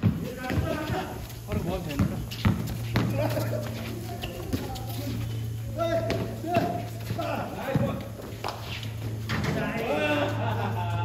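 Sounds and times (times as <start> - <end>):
basketball bouncing on concrete: 0.0 - 9.8.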